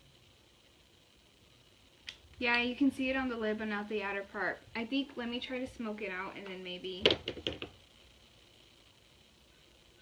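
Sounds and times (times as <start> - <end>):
makeup items clicking and knocking: 7.0 - 7.8.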